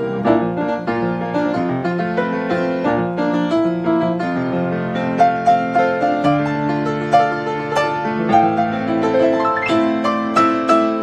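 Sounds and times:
grand piano playing: 0.0s - 11.0s.

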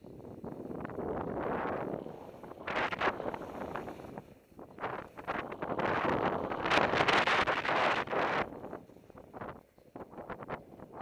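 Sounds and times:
wind rushing over microphone: 0.0s - 11.0s
snow spraying under skis: 0.4s - 9.5s.

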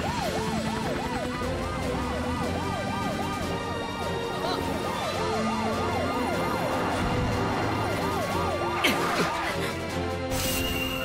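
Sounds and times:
emergency vehicle sirens wailing: 0.0s - 10.3s.

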